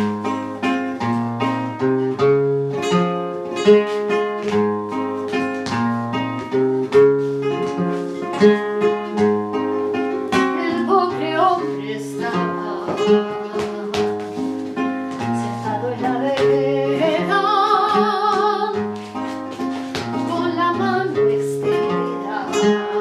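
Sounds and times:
flamenco guitar playing: 0.0 - 23.0
woman singing with vibrato: 10.3 - 19.0, 20.1 - 23.0.

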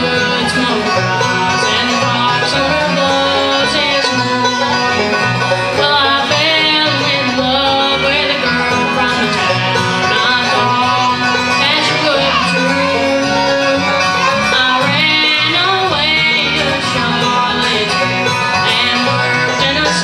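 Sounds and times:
banjo: 0.0 - 20.0
fiddle: 0.0 - 20.0
strummed acoustic guitars: 0.0 - 20.0.

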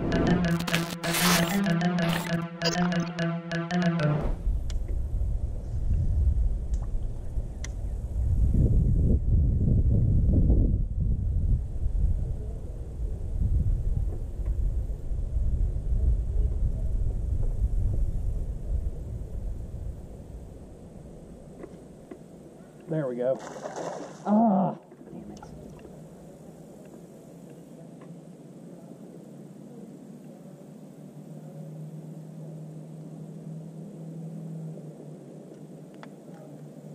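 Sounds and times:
short music sting: 0.0 - 4.4
wind buffeting microphone: 4.6 - 20.8.

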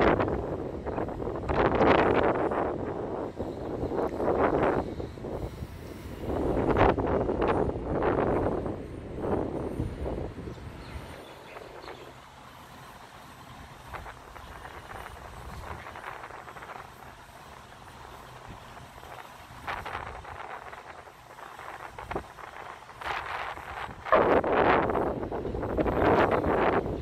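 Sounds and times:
traffic rumble: 0.0 - 27.0
wind buffeting microphone: 0.0 - 27.0.

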